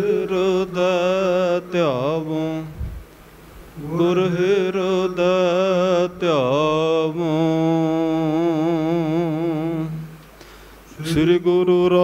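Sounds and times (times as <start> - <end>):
man chanting: 0.0 - 2.8, 3.8 - 10.2, 11.0 - 12.0.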